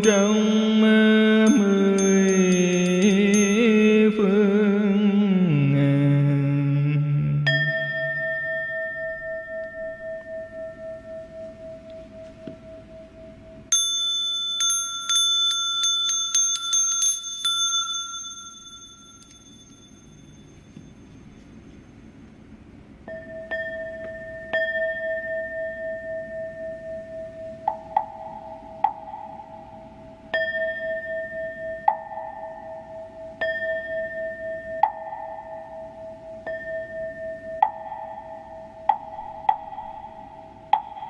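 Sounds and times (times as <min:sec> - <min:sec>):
higher second bell: 0:00.0 - 0:04.4, 0:07.4 - 0:22.2, 0:23.0 - 0:41.0
bowl bell ringing: 0:00.0 - 0:05.0, 0:07.4 - 0:22.1, 0:23.0 - 0:41.0
small hand bell rapid strokes: 0:01.5 - 0:03.8, 0:13.7 - 0:21.1.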